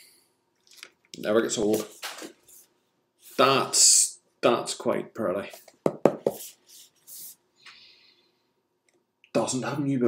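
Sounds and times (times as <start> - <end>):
paper rustling: 1.6 - 3.4.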